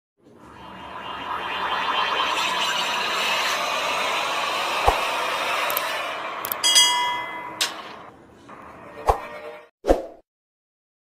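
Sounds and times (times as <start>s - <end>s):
metallic clinks and ringing tones: 6.6s - 7.7s.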